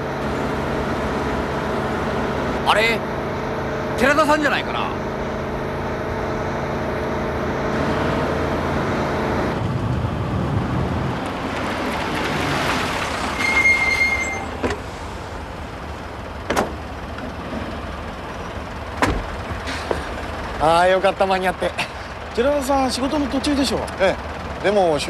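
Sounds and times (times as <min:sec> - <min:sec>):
vehicle engines running: 0:00.0 - 0:25.0
high squeal: 0:13.2 - 0:14.7
car doors shutting: 0:13.3 - 0:15.0, 0:16.5 - 0:17.3, 0:19.0 - 0:20.1.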